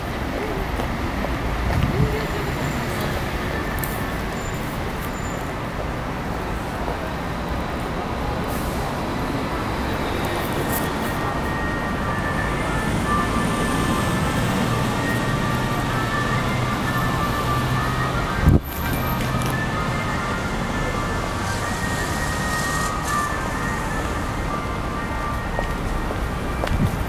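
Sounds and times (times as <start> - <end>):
low rumble of city traffic: 0.0 - 27.0.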